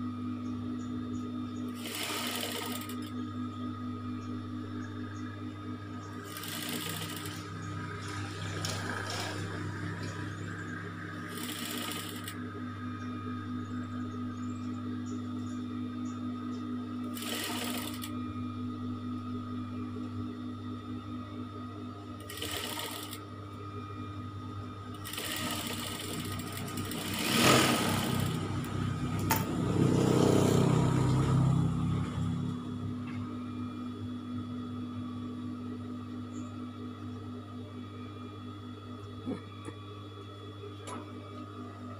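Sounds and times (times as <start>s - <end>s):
sewing machine motor humming: 1.7s - 3.2s, 6.2s - 12.4s, 17.0s - 18.2s, 22.2s - 23.2s, 24.9s - 31.2s
sewing machine stitching: 1.8s - 3.1s, 6.2s - 7.5s, 8.1s - 9.5s, 11.2s - 12.4s, 17.1s - 18.1s, 22.2s - 23.2s, 25.0s - 28.4s.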